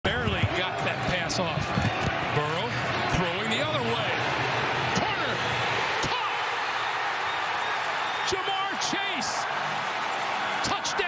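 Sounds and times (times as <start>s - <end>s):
stadium crowd shouting: 0.1s - 11.0s.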